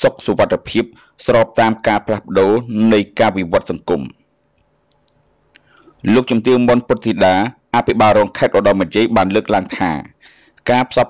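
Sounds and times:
faint short clicks: 0:04.6 - 0:05.8.

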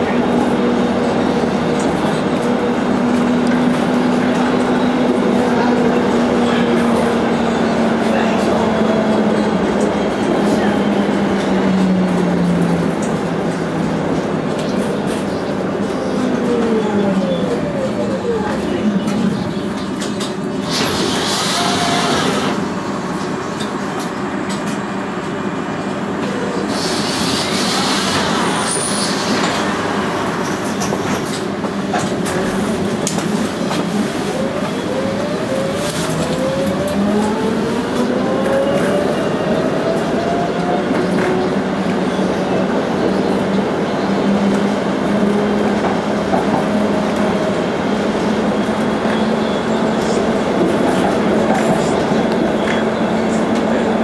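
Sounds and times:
tram motor whine: 0:00.0 - 0:54.0
tram wheels on rails: 0:00.0 - 0:54.0.

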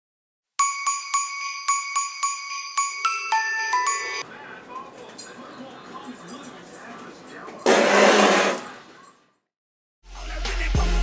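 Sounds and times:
jingle-bell music: 0:00.6 - 0:04.2
faint voices: 0:04.2 - 0:07.7.

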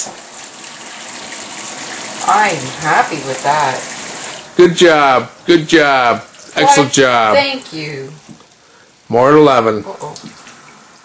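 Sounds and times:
faucet spray into sink: 0:01.3 - 0:04.5.

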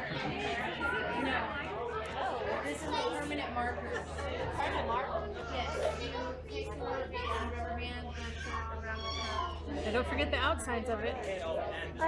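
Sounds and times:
chatter of voices: 0:00.0 - 0:12.0.

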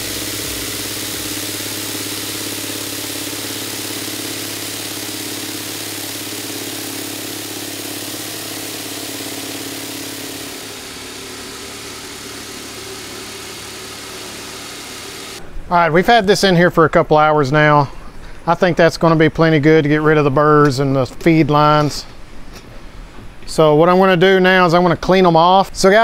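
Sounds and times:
vibratory tumbler media churning: 0:00.0 - 0:14.7
motor hum: 0:00.0 - 0:15.5.

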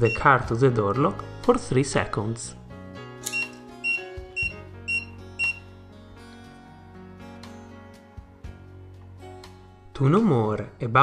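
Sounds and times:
electronic lock beeps: 0:00.0 - 0:00.4, 0:03.2 - 0:05.6
soft background music: 0:00.0 - 0:11.0.

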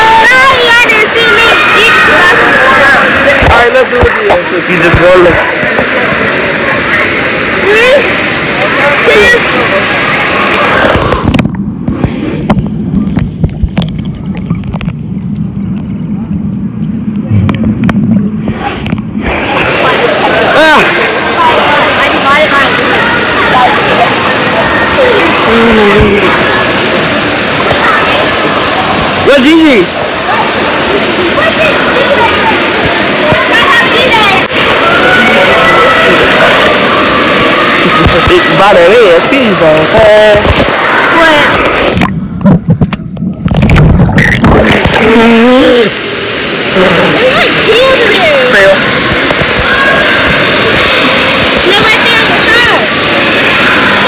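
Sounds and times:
children shouting: 0:00.0 - 0:03.3, 0:26.1 - 0:29.2, 0:30.1 - 0:38.3, 0:49.4 - 0:54.0
pool water splashing: 0:00.0 - 0:54.0.

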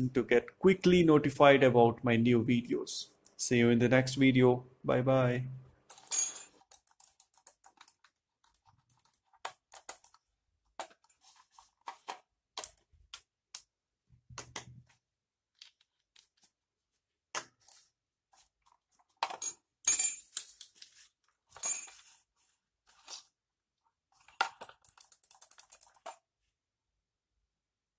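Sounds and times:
objects clicking on tile floor: 0:24.2 - 0:26.2.

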